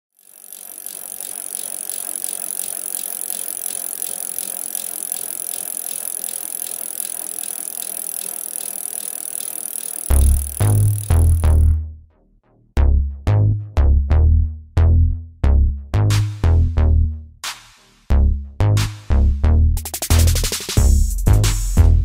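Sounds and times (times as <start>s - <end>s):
bicycle freewheel ratcheting: 0.1s - 11.8s.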